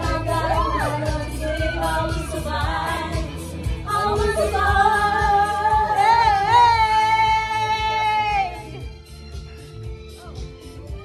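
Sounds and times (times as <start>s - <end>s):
woman singing into microphone: 0.0s - 8.8s
backing music with a beat: 0.0s - 11.0s.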